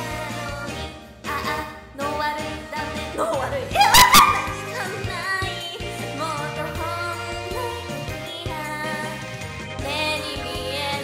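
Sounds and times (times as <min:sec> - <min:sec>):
background music: 0:00.0 - 0:11.0
woman laughing high-pitched: 0:03.7 - 0:04.9.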